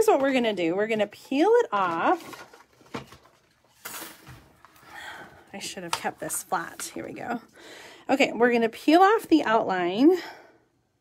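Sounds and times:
paper rustling on a desk: 1.7 - 4.8.

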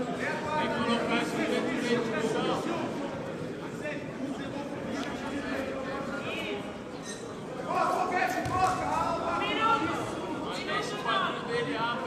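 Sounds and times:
echoing voices and chatter: 0.0 - 12.0.

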